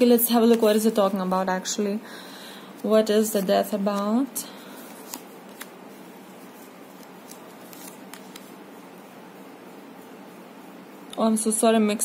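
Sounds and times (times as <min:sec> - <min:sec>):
steady background hiss: 0:00.0 - 0:12.0
cards clicking and snapping: 0:04.9 - 0:05.8, 0:07.0 - 0:08.5.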